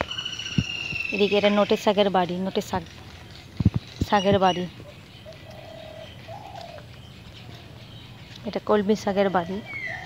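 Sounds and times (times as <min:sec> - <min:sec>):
dove cooing: 0:03.7 - 0:07.9, 0:09.1 - 0:10.0.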